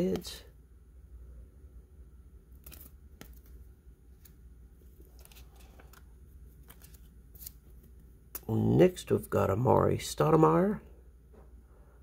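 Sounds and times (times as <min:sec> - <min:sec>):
low steady hum: 0:00.0 - 0:12.0
trading cards rustling and clicking: 0:02.5 - 0:08.6.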